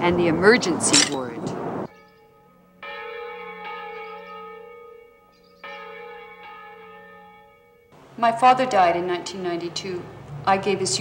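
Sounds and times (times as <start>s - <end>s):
church bell tolling: 1.9s - 10.1s.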